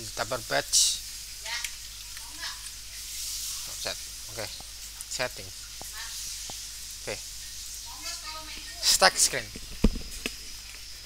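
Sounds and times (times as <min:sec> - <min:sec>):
microphone hiss: 0:00.0 - 0:11.0.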